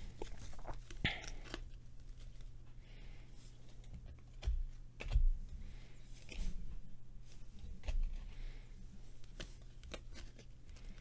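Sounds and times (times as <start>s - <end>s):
trading cards shuffling: 0.0s - 2.6s, 7.3s - 11.0s
low steady hum: 0.0s - 11.0s.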